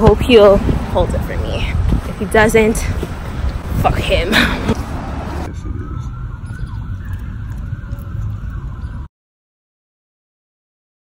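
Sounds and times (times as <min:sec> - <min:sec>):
street traffic rumble: 0:00.0 - 0:09.1
distant siren wailing: 0:05.0 - 0:09.1.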